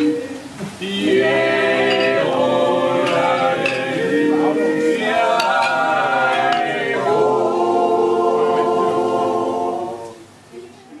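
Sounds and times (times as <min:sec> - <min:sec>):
group singing a cappella: 0:00.0 - 0:10.4.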